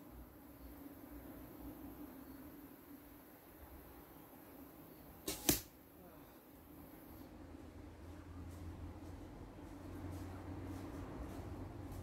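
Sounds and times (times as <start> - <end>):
arrow hitting leafy ground: 5.2 - 5.8.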